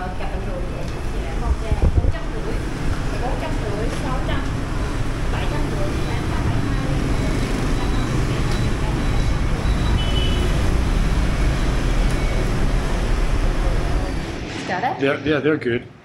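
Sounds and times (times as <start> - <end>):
city street traffic rumble: 0.0 - 15.4.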